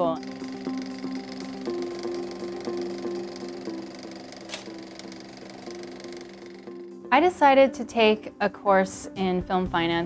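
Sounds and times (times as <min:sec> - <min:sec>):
soft sustained background music: 0:00.0 - 0:10.0.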